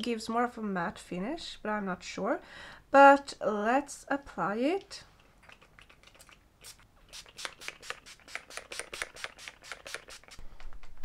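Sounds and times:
spray bottle spritzing: 0:06.6 - 0:10.4.

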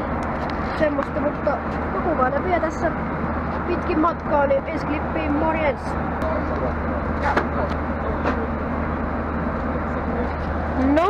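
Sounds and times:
airliner engines and airflow rumble: 0:00.0 - 0:11.0
faint passenger voices: 0:00.0 - 0:11.0.

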